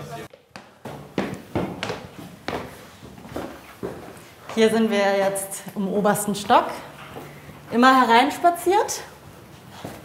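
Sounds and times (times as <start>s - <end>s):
footsteps on hard stairs: 0.3s - 5.2s.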